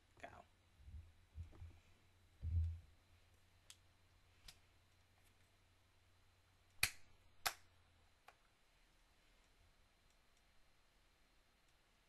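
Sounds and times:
soft low thumps: 0.8 - 1.8, 2.4 - 3.0.

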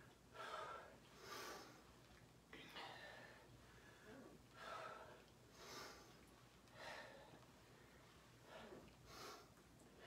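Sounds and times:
woman breathing with exertion: 0.0 - 1.9, 2.6 - 10.0.

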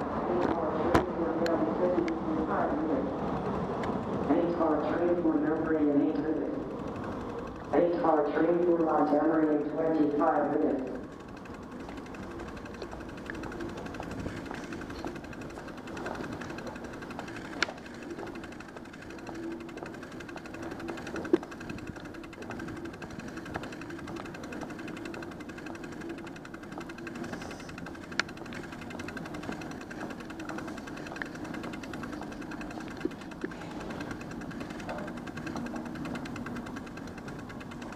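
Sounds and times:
subway platform mechanical drone: 0.0 - 37.9
sharp clicks: 3.3 - 37.9.

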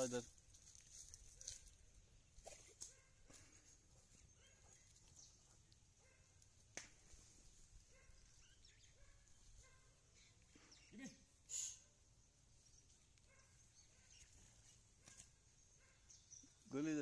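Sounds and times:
faint outdoor ambience: 0.0 - 17.0.

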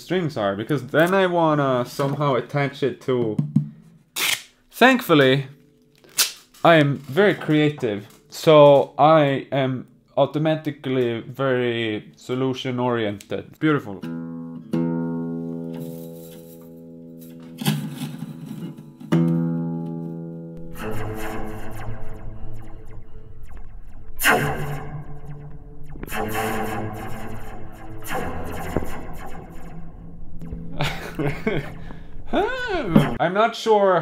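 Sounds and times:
guitar chords strummed: 14.0 - 15.9.

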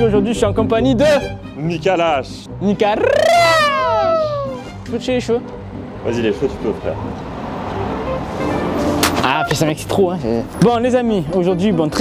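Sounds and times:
cat-like meow: 3.0 - 4.6.

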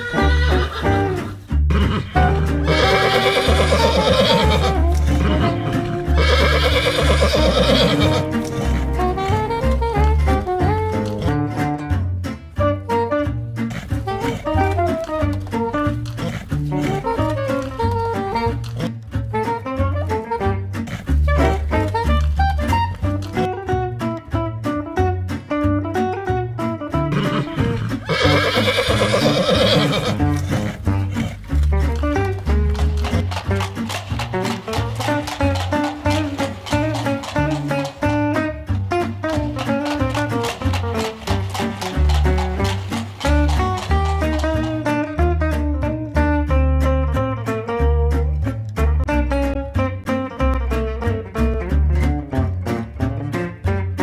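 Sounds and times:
trembling horse whinny: 0.0 - 9.3, 27.1 - 31.6
music with repeating bass line: 0.2 - 6.5, 7.9 - 28.4, 29.0 - 54.0.

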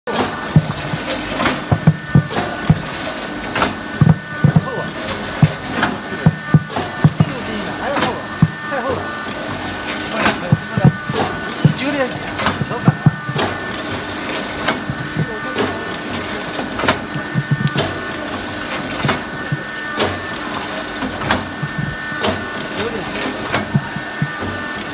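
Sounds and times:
sharp knocks of press: 0.1 - 7.4, 8.0 - 9.2, 10.2 - 18.1, 23.4 - 24.7
machine hum: 0.1 - 24.9.

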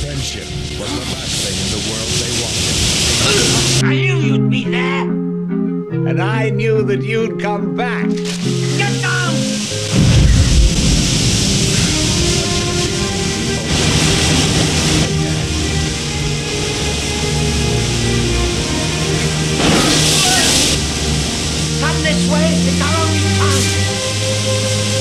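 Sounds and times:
rushing water: 0.0 - 3.8, 8.0 - 25.0
dramatic film score: 0.0 - 6.0, 8.0 - 25.0
low boom: 9.9 - 15.0.

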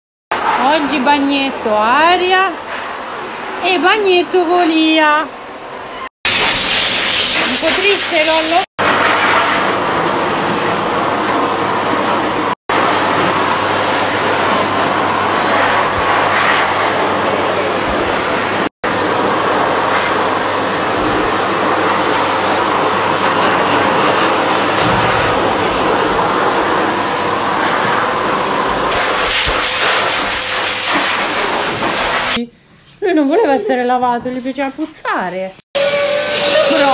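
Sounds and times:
shower spraying water on dog: 6.3 - 32.4.

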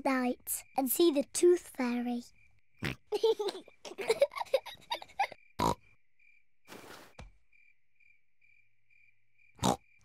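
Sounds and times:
faint cricket chirp: 0.0 - 10.0
cartoon voice giggling: 3.1 - 5.4.

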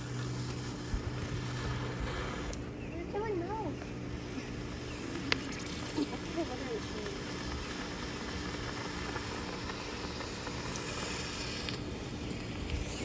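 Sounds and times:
smoke bomb hissing: 0.0 - 2.7, 4.1 - 13.0.

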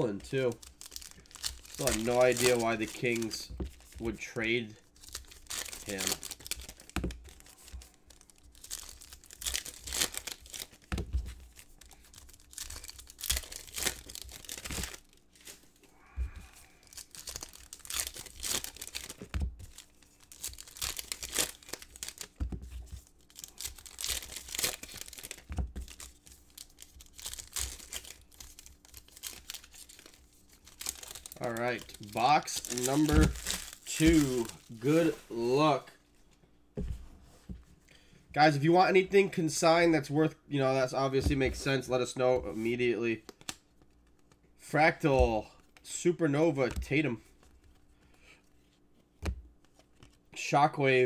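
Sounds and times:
foil wrappers tearing and crinkling: 0.2 - 4.2, 4.9 - 15.6, 16.6 - 22.4, 23.0 - 35.4.

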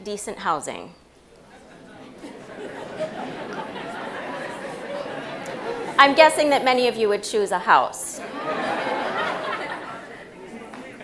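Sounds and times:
audience murmuring and chattering: 1.2 - 11.0.

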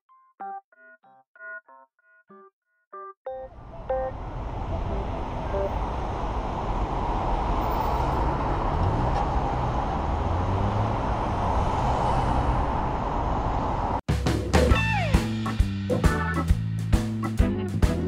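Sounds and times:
engine rising in pitch: 3.5 - 14.0
road traffic rumble: 3.5 - 14.0.

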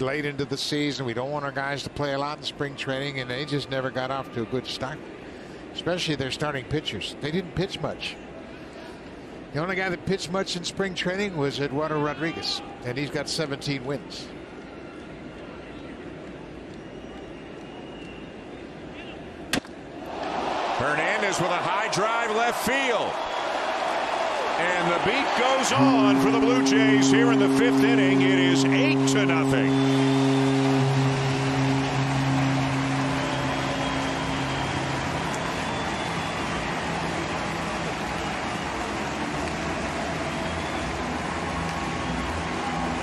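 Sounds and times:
crowd cheering: 20.0 - 43.0
steady low tone: 25.0 - 43.0.

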